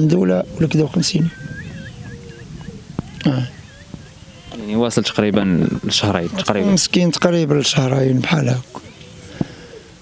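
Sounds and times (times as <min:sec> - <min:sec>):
faint bird whistling calls: 0:00.0 - 0:05.2.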